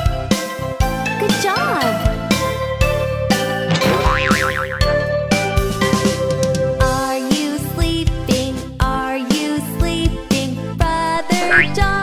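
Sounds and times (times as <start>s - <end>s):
cartoon background music: 0.8s - 12.0s
springy cartoon sound: 3.7s - 4.9s.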